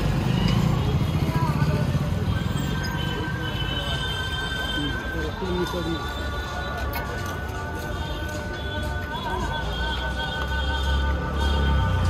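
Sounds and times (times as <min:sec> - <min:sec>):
low rumble of traffic: 0:00.0 - 0:12.0
voices murmuring: 0:00.0 - 0:12.0.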